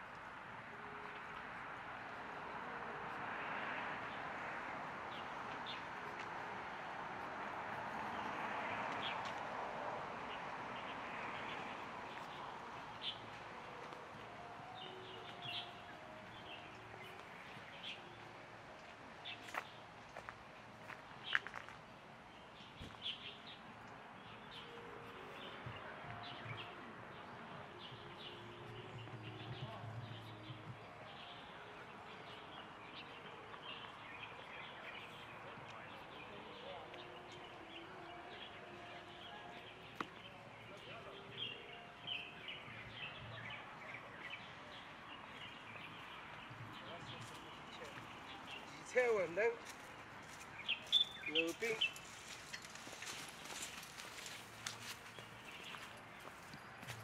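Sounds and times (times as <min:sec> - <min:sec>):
small birds chirping: 0:10.2 - 0:57.0.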